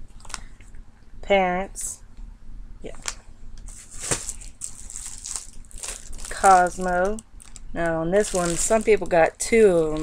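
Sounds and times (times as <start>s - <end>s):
plastic wrapper crinkling: 0.1s - 0.5s, 3.0s - 10.0s
paper rustling: 3.7s - 7.6s.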